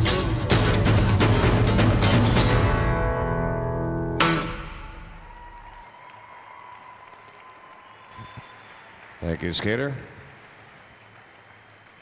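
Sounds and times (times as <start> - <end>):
music with rhythmic hits: 0.0 - 3.1.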